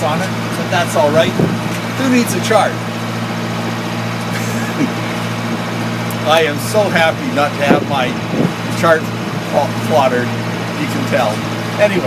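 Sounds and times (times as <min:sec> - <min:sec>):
engine running steadily: 0:00.0 - 0:12.0.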